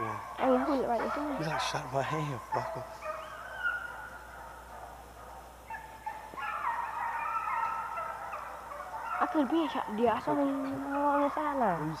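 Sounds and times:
overlapping animal calls: 0:00.0 - 0:12.0.

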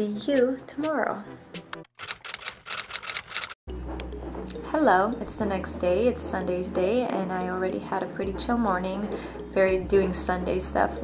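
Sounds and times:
rapid sharp clicks: 0:02.0 - 0:03.6.

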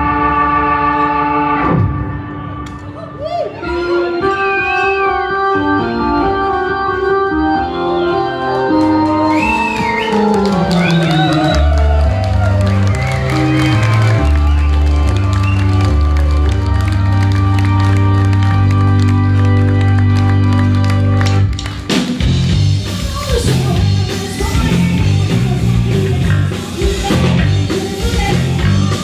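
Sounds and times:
organ playing held chords: 0:03.8 - 0:12.0, 0:12.6 - 0:21.6
deep bass line: 0:08.8 - 0:21.6, 0:22.2 - 0:29.0
audience shouts and whistles: 0:09.1 - 0:16.8.

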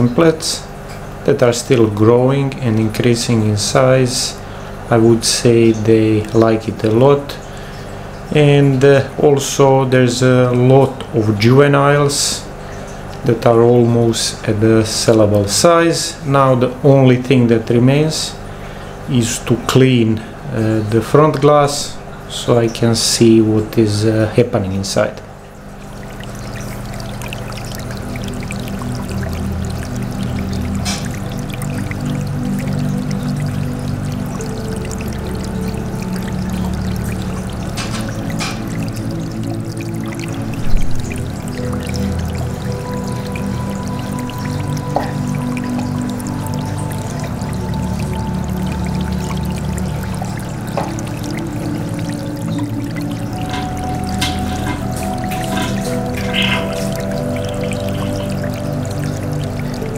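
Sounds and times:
calm ambient music: 0:00.0 - 0:59.9
water pouring and trickling: 0:00.0 - 0:59.9.

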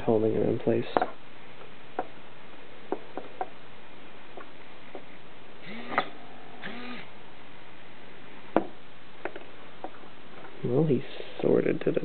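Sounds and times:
steady hiss: 0:00.0 - 0:12.0
servo motor buzzing: 0:05.6 - 0:07.1.

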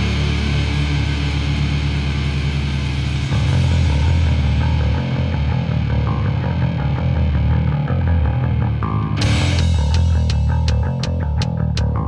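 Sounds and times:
heavy rock electric guitar music: 0:00.0 - 0:12.0.

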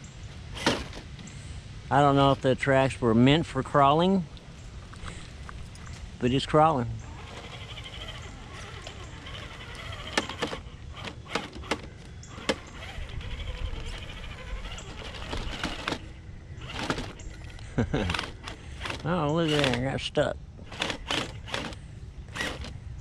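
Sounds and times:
faint electric whine: 0:00.0 - 0:23.0.

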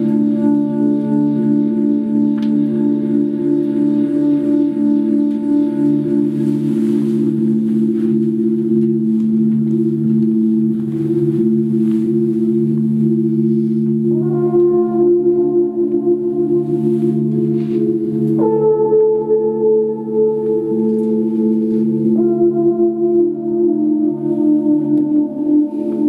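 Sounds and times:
low drone of ensemble tones: 0:00.0 - 0:26.0.

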